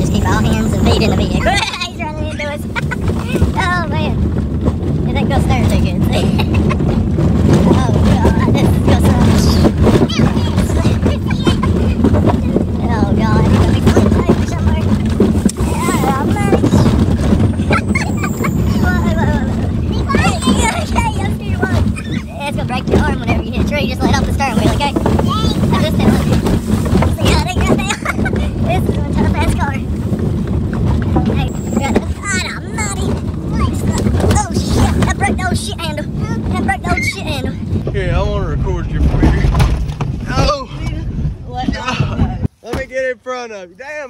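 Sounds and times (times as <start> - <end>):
passengers yelling and laughing: 0.0 - 30.0, 30.9 - 37.8, 40.3 - 42.6
car rumbling over rough trail: 0.0 - 44.0.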